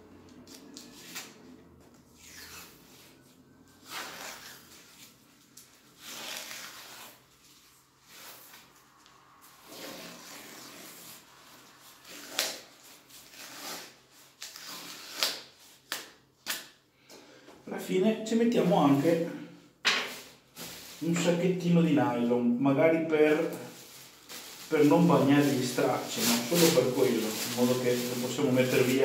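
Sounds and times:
masking tape pulled off roll: 2.2 - 2.8, 3.8 - 16.8
fabric rubbing: 5.8 - 15.2, 23.7 - 29.0.

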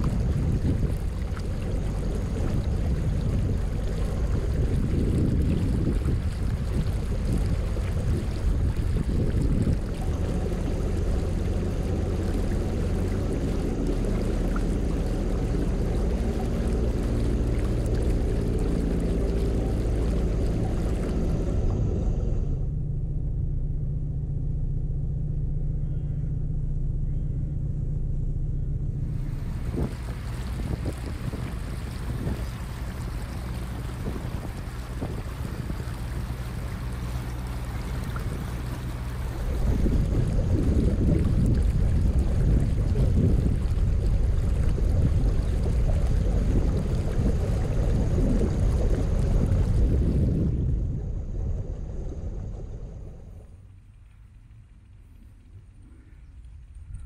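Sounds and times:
wind buffeting microphone: 0.0 - 22.5, 29.1 - 53.4
water rushing: 0.0 - 22.6, 29.1 - 55.2
diesel engine running: 0.0 - 53.6.

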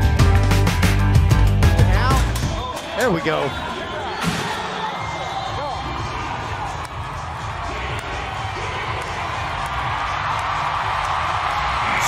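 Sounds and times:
arena crowd noise: 1.8 - 12.0
music with thumping beat: 5.6 - 11.8.

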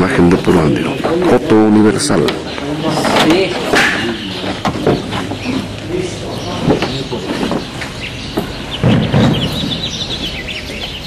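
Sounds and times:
birds chirping: 0.0 - 11.0
indistinct background voices: 0.0 - 11.0
loud thump: 8.8 - 10.0.

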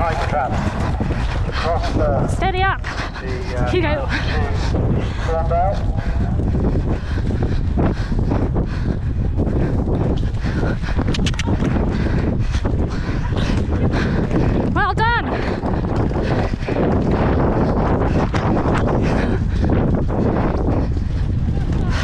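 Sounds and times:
wind on microphone: 0.0 - 22.0.

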